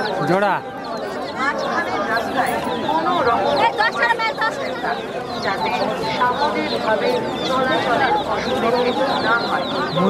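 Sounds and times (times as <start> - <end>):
baby chickens peeping: 0.0 - 10.0
murmuring voices: 0.0 - 10.0.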